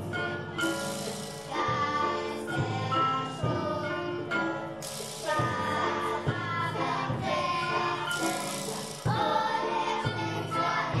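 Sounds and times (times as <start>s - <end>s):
children's choir singing: 0.0s - 11.0s
instrumental accompaniment: 0.0s - 11.0s
jingling percussion: 0.0s - 11.0s.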